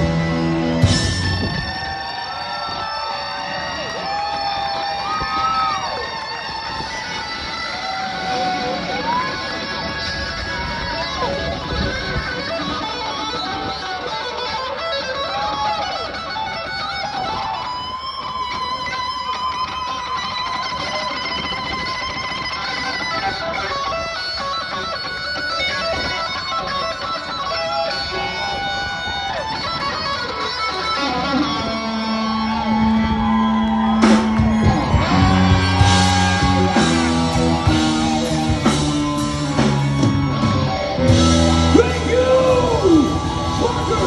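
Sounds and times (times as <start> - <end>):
electric guitar bending notes: 0.0 - 2.0, 4.2 - 44.0
live rock band playing: 0.0 - 44.0.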